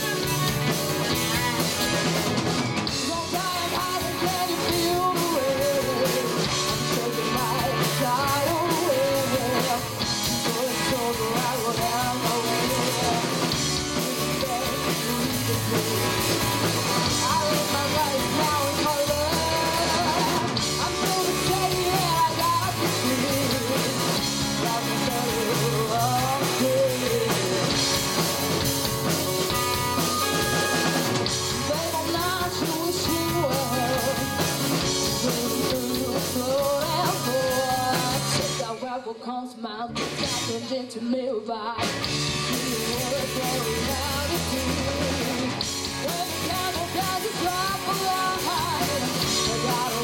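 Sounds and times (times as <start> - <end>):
drum kit: 0.0 - 38.8, 39.9 - 40.7, 41.8 - 50.0
electric guitars: 0.0 - 38.9, 39.9 - 41.0, 41.7 - 50.0
keyboard: 0.0 - 39.0, 41.8 - 50.0
woman singing: 2.9 - 28.0, 31.6 - 50.0.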